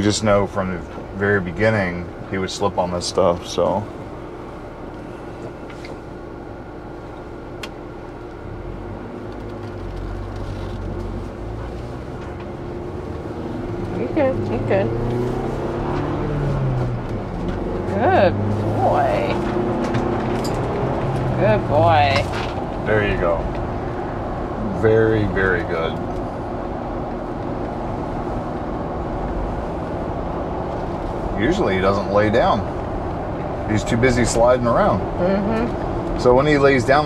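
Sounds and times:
car engine from inside cabin: 0.0 - 37.0
road noise: 0.0 - 37.0.

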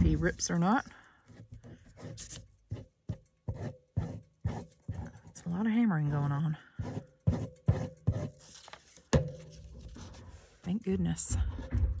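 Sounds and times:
paper taps and rustles: 8.4 - 10.2.

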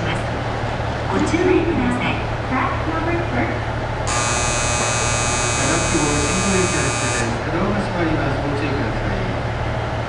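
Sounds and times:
diesel railcar idling: 0.0 - 10.0
shrill electronic departure bell: 4.1 - 7.4.

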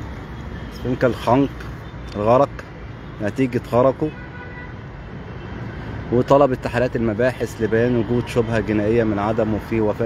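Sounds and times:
city traffic: 0.0 - 10.0.

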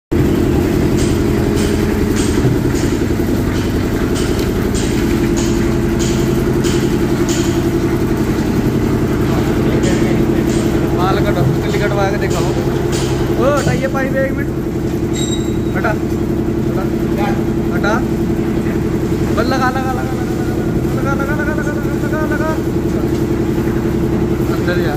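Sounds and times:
loud machine hum: 0.1 - 24.9.

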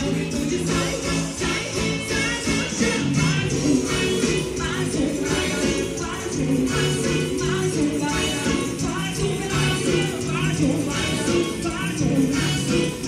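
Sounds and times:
percussion-driven beat: 0.0 - 13.0
person singing: 0.0 - 13.0.

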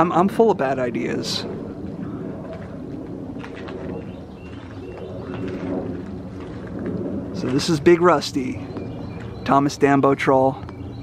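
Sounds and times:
birds calling faintly: 0.0 - 11.0
steady low rumble: 0.0 - 11.0.

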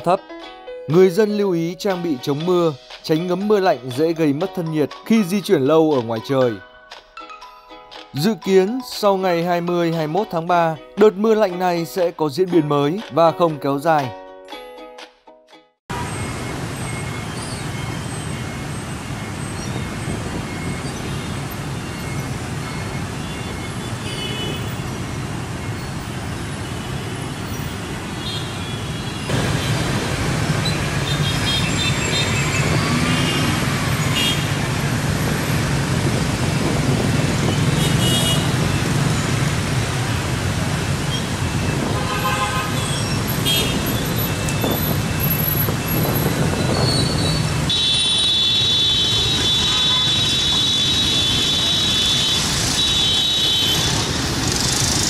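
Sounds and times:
motorbike and car engines: 15.9 - 55.0.

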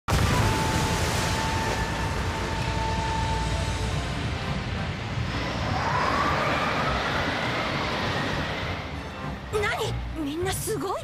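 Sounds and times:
deep rumble: 0.1 - 10.4.

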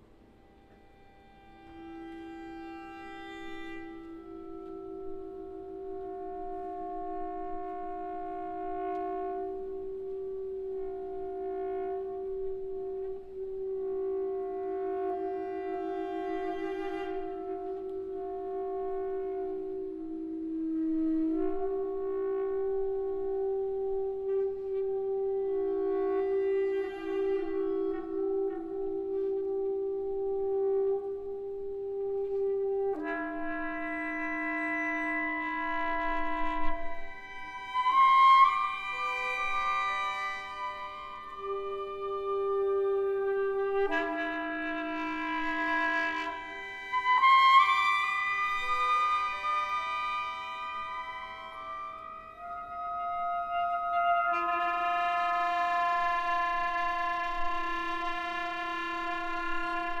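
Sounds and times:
alto saxophone: 0.0 - 60.0
symphony orchestra playing: 25.0 - 60.0.

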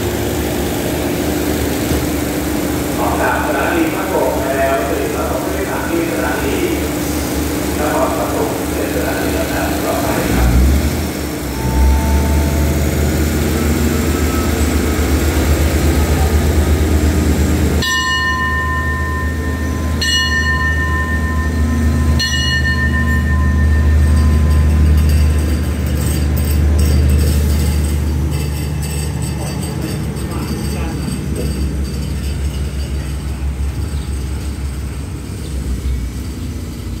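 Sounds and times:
diesel train engine rumble: 0.0 - 37.0
ringing bell strokes: 11.5 - 13.2, 17.8 - 34.7.

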